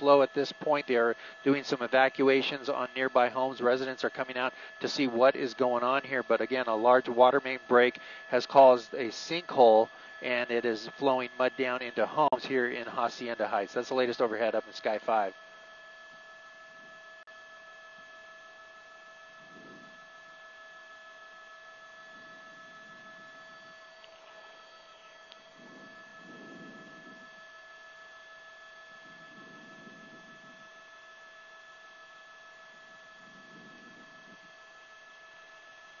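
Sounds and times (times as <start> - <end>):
faint electrical hum: 0.0 - 36.0.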